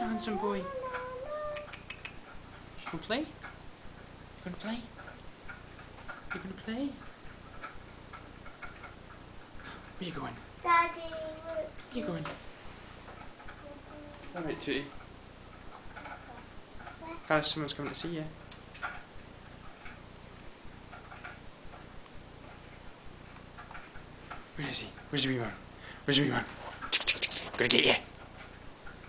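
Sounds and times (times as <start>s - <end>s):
person baby talking: 0.0s - 1.8s, 10.6s - 12.4s, 13.6s - 14.6s
low room noise: 0.0s - 29.0s
low steady hum: 0.0s - 29.0s.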